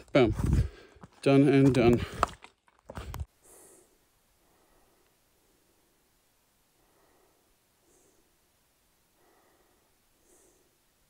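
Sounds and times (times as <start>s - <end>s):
man talking: 0.0s - 0.6s, 1.2s - 2.2s.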